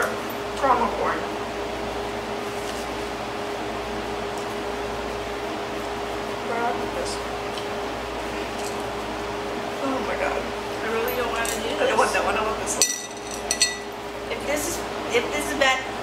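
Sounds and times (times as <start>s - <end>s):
room hum: 0.0s - 16.0s.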